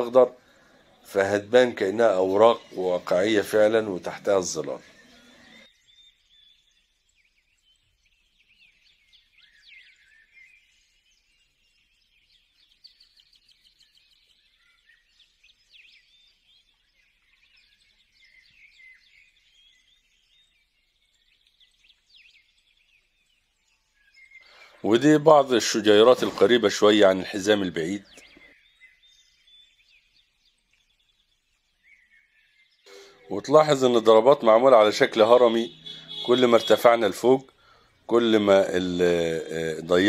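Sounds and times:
faint bird chirps: 0.0s - 40.0s.

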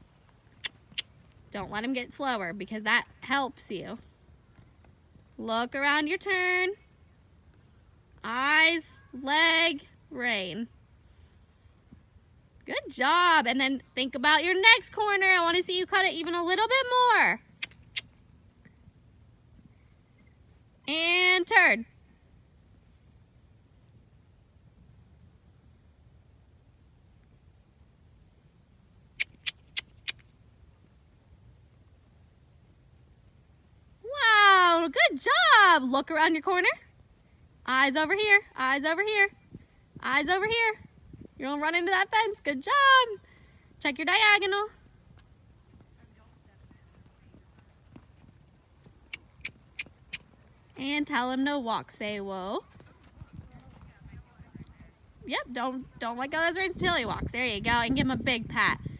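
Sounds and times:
pony hooves trotting on sand: 0.0s - 8.5s, 43.6s - 58.0s
sharp tongue clicks: 0.5s - 1.2s, 17.6s - 18.2s, 29.1s - 30.3s, 49.1s - 50.3s.

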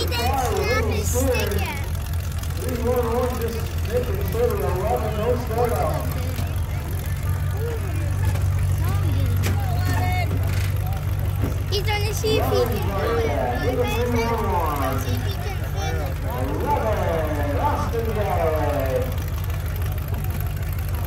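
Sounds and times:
car engines rumbling: 0.0s - 21.0s
people's voices: 0.0s - 21.0s.

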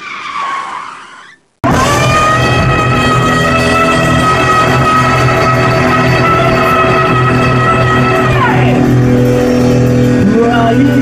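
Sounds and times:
live rock band with electric guitar: 1.6s - 11.0s.

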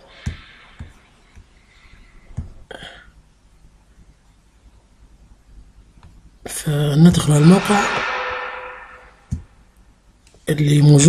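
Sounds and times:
man's voice with room echo: 6.5s - 9.2s, 10.5s - 11.0s.

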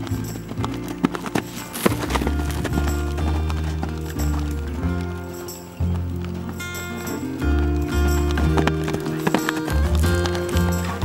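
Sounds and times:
background music: 0.0s - 11.0s
horse hoofbeats on sand: 0.0s - 11.0s.

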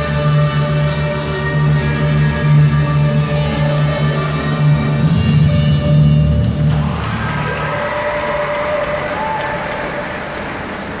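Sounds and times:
music over loudspeakers: 0.0s - 7.8s
spectators applauding: 6.7s - 11.0s.

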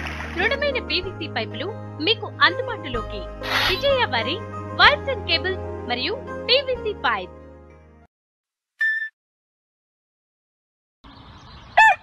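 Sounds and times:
rooster crowing: 11.8s - 12.0s.

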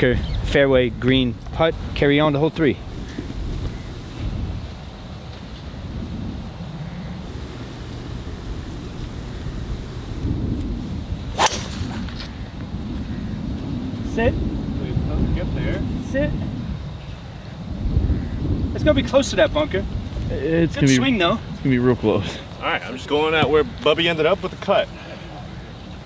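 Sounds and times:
wind on microphone: 0.0s - 22.6s
golf club striking ball: 11.4s - 12.3s.

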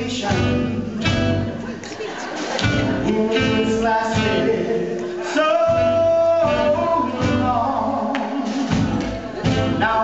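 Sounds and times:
live soul band: 0.0s - 10.0s
man singing long high note: 3.0s - 8.6s.

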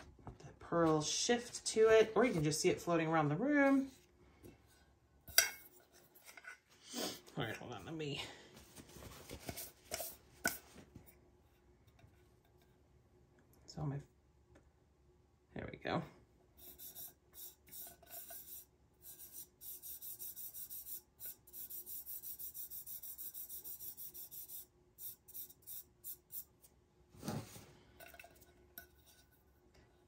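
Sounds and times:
fingertip rubbing powder on tumbler: 16.6s - 26.7s.

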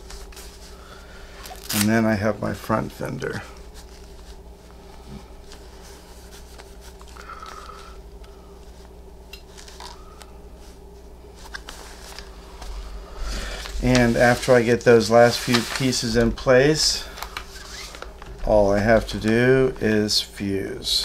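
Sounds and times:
low electrical hum: 0.0s - 21.0s
fabric rustling: 3.6s - 7.1s.

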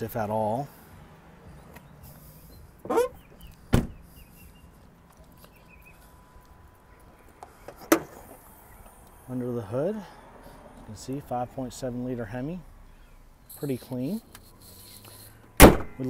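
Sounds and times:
truck door shutting with a thud: 2.8s - 4.0s, 15.6s - 16.0s.

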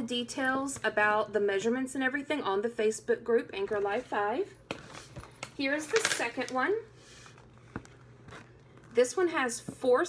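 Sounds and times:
paper notebook handling: 7.2s - 9.0s.

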